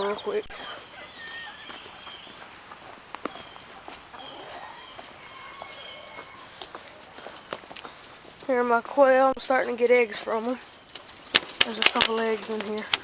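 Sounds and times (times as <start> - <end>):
birds chirping: 0.0 - 13.0
footsteps on dry leaves: 0.5 - 8.9.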